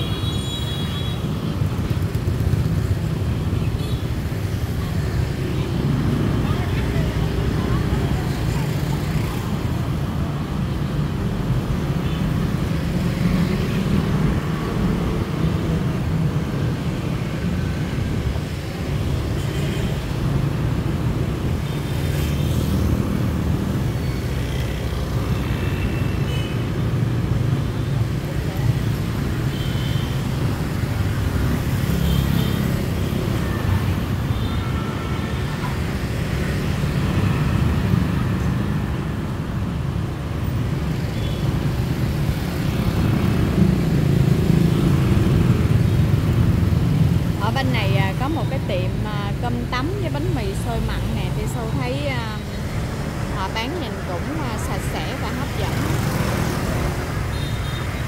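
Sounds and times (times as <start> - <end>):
motorbikes and cars passing: 0.0 - 58.0.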